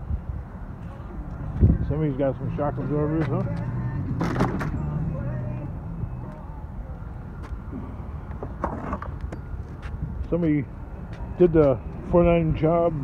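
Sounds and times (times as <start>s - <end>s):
vehicle engine idling: 0.6s - 9.6s.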